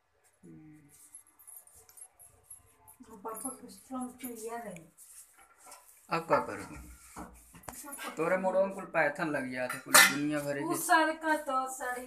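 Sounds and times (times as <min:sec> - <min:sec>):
metal utensils clattering: 0:09.6 - 0:10.6.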